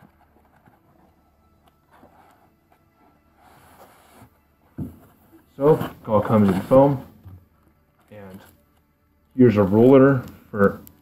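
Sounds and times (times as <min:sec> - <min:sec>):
cardboard box rustling and scraping: 0:01.9 - 0:07.2.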